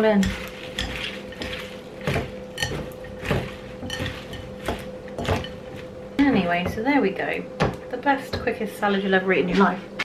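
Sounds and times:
salad leaves rustling: 0.0 - 6.1.

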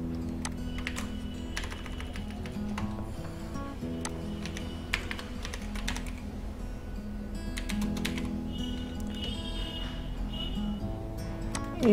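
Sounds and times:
soft background music: 0.0 - 11.9
computer keys clicking: 0.2 - 2.9, 4.0 - 6.2, 7.6 - 8.3, 11.5 - 11.9.

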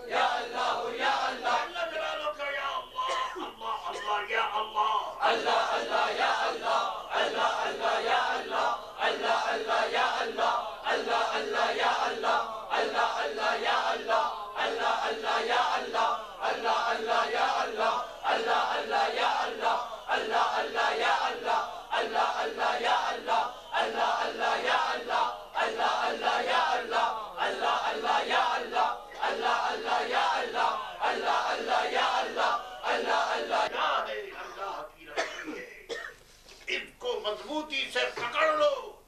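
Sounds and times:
men chanting loudly: 0.0 - 35.3.

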